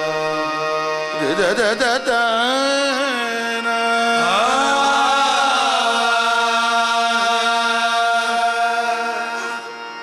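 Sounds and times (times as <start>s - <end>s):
harmonium drone: 0.0s - 10.0s
voices singing long notes: 3.6s - 10.0s.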